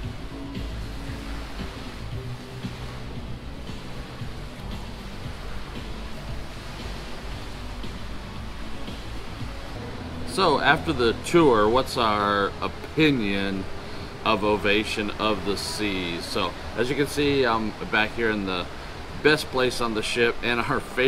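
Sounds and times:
background music with strong bass: 0.0 - 21.0
steady hiss: 0.0 - 21.0.

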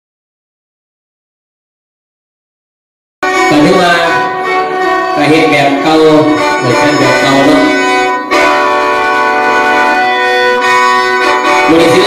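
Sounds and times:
free-reed mouth organ chord: 3.2 - 12.0.

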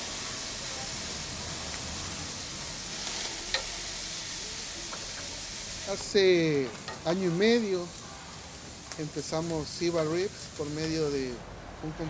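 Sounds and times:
flames flaring: 0.0 - 12.0
meat sizzling on a grill: 0.0 - 12.0.

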